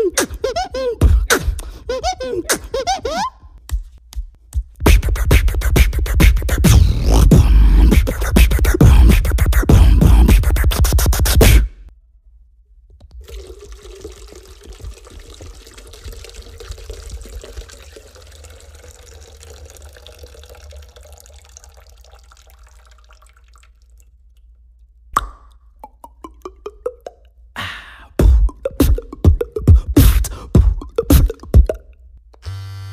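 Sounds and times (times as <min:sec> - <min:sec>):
beatboxing: 0:00.0 - 0:03.4, 0:04.5 - 0:11.8, 0:25.2 - 0:27.2, 0:28.2 - 0:31.9
trickling and dripping water: 0:13.1 - 0:25.0
mouth-made plops: 0:25.1 - 0:27.4.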